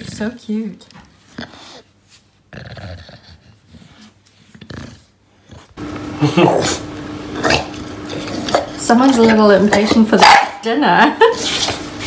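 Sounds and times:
dog grumbling: 2.5 - 9.5.

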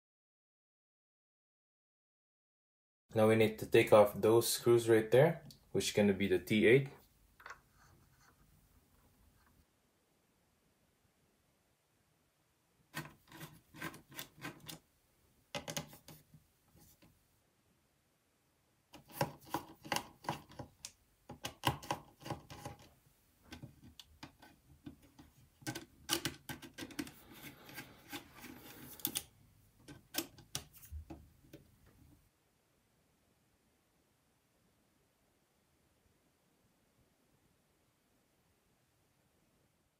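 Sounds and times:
screwdriver clicks and scrapes: 13.0 - 14.8, 23.5 - 30.9.

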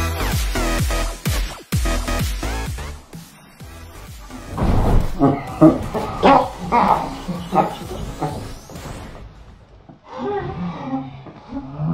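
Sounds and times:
person laughing out loud: 5.0 - 8.7.

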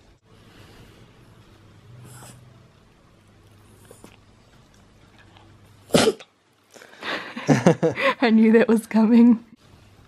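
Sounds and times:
dog sneezing: 5.8 - 6.3.

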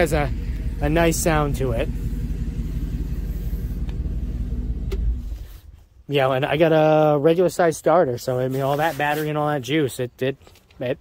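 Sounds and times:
van engine idling: 0.0 - 7.2.

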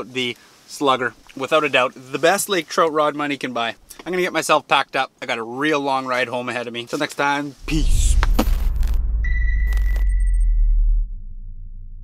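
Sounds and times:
heavy bass drone: 7.6 - 12.0
steady high beep: 9.1 - 11.1.

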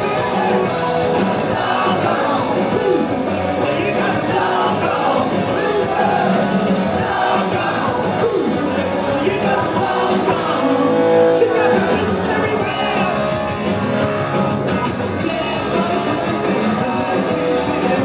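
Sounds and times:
live rock band playing: 0.0 - 18.0.

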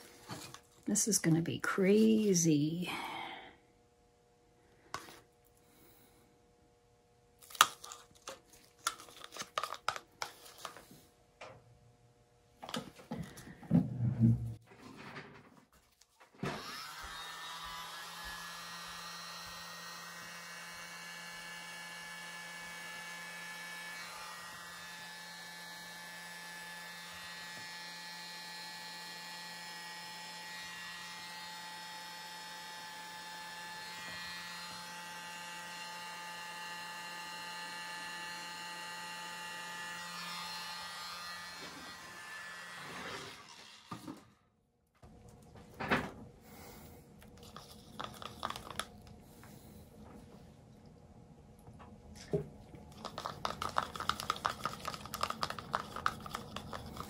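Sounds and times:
hair dryer whining and humming: 16.4 - 44.2.

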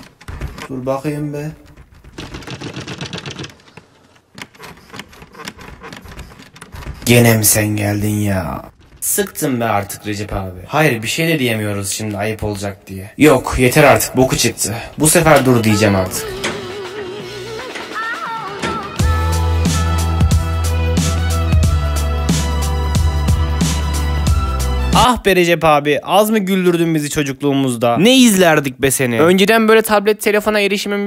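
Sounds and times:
rapid tapping and knocking: 1.5 - 11.2.

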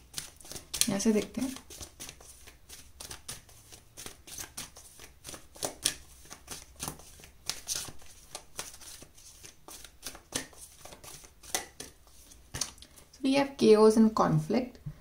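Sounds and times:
cards being shuffled by hand: 0.0 - 13.1.

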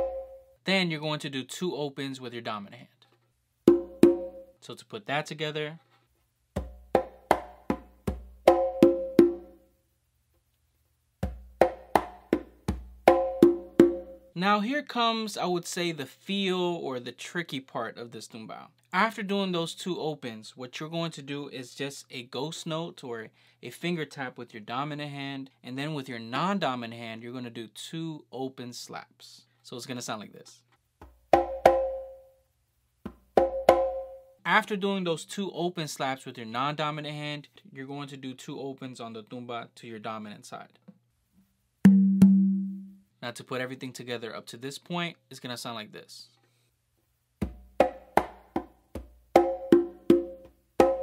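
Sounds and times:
conga drum played by hand: 3.7 - 4.5, 6.6 - 9.6, 11.2 - 14.3, 31.3 - 32.2, 33.1 - 34.2, 41.9 - 42.9, 47.4 - 51.0.

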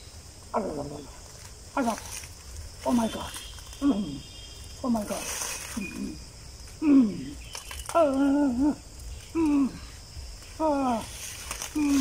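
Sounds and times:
man's wordless cries: 6.8 - 10.0, 10.6 - 12.0.

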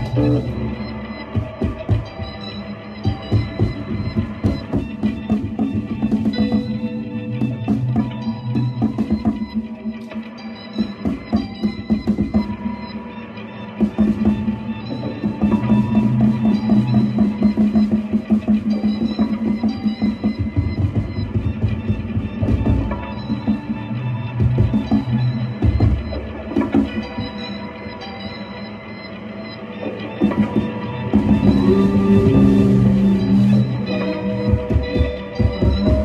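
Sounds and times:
electric guitar: 0.0 - 36.0
drum kit steady beat: 30.2 - 36.0.

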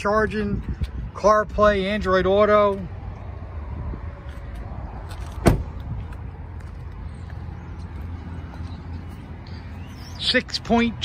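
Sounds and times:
car door slamming: 5.2 - 5.8.

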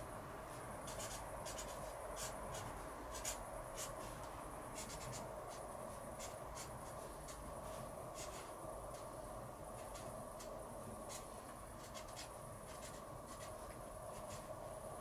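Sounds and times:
steady low hum: 0.0 - 15.0
pen scratching on wood: 0.9 - 4.0, 4.8 - 5.6, 6.2 - 7.0, 11.1 - 14.5.

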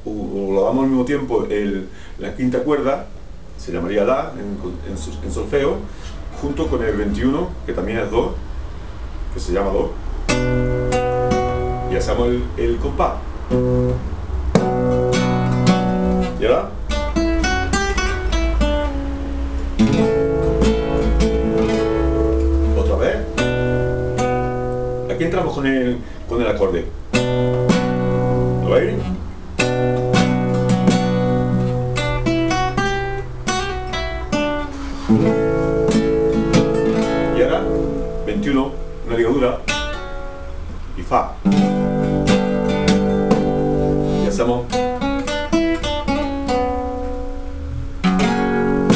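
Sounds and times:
classical guitar playing rumba: 10.0 - 48.9.

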